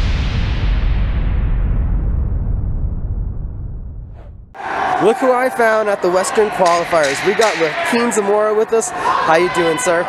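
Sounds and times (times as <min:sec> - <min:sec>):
low rumbling boom: 0:00.0 - 0:04.6.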